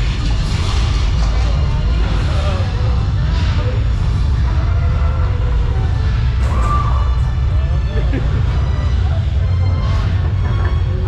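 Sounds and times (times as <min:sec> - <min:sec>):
deep rumble: 0:00.0 - 0:11.0
faint music: 0:00.0 - 0:11.0.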